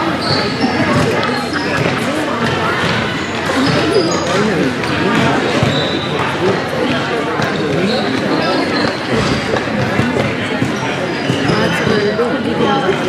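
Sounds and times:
overlapping voices in echoing hall: 0.0s - 13.0s.

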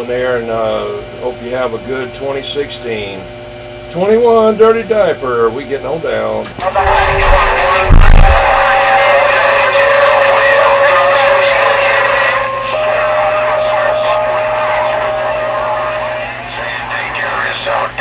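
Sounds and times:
garbled radio voices: 6.6s - 18.0s
steady radio whistle: 6.6s - 18.0s.

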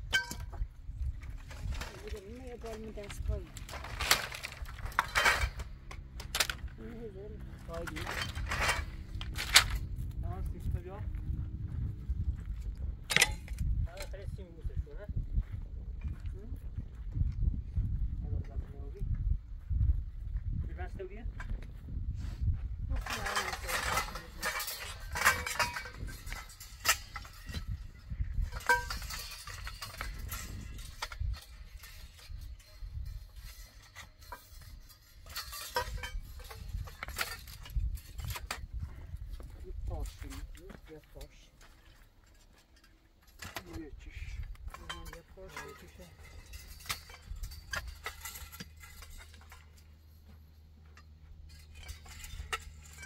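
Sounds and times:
metal poles clinking and knocking: 0.0s - 10.9s, 12.4s - 14.6s, 22.9s - 53.0s
low wind rumble on microphone: 0.0s - 41.6s, 43.1s - 53.0s.

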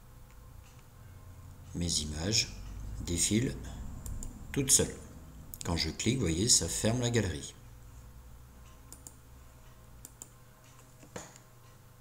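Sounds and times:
low steady hum: 0.0s - 12.0s
computer mouse clicks: 4.0s - 4.4s, 8.7s - 9.2s, 10.0s - 11.5s.

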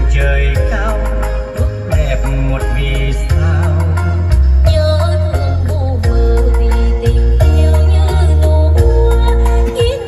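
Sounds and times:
record playing music through speakers: 0.0s - 10.0s.

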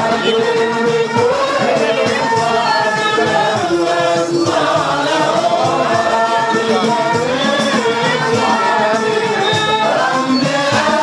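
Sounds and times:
chorus singing devotional song: 0.0s - 11.0s.

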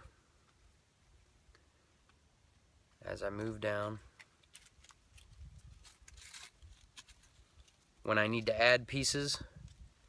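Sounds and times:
bark strips rustling: 3.9s - 8.5s.

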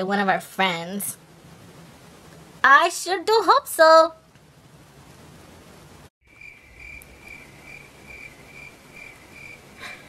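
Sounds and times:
cricket chirping: 6.3s - 10.0s.

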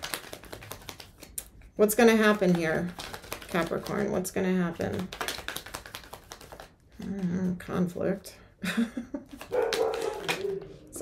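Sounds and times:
cards being shuffled: 0.0s - 7.6s, 9.3s - 11.0s.

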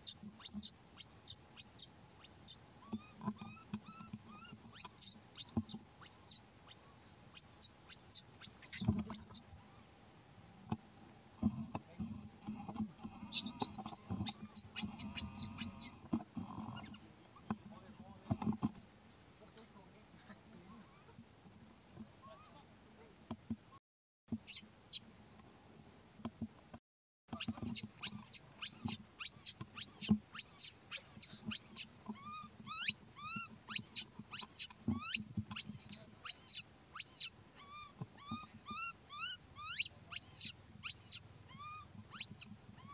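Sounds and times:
baby monkey squealing: 0.0s - 9.8s, 13.2s - 17.0s, 22.2s - 22.6s, 27.3s - 42.9s
rustling and thumps of movement: 8.8s - 9.6s, 10.6s - 22.2s.

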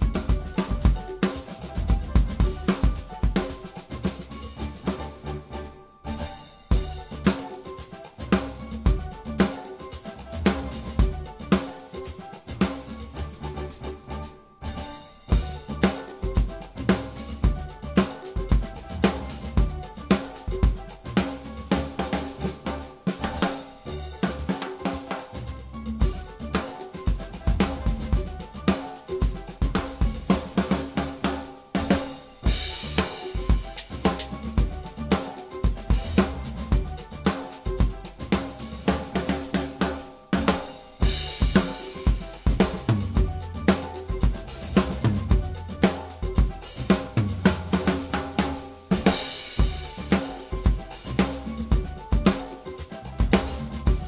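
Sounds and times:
drum kit groove: 0.0s - 54.0s.

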